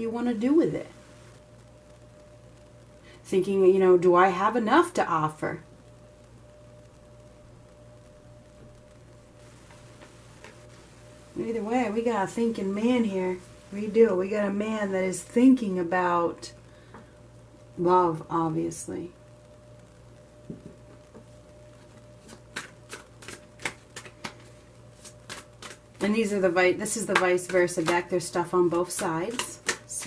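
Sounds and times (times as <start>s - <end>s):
steady low hum: 0.0s - 30.0s
cards being shuffled: 9.6s - 10.7s, 21.8s - 30.0s
sharp card snaps: 22.2s - 26.1s, 28.9s - 30.0s
card ticks and taps: 27.0s - 28.1s, 28.8s - 30.0s.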